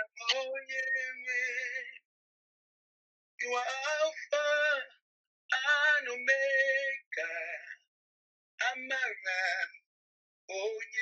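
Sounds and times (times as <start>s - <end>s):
person singing unaccompanied: 0.0s - 2.0s, 3.4s - 7.8s, 10.5s - 11.0s.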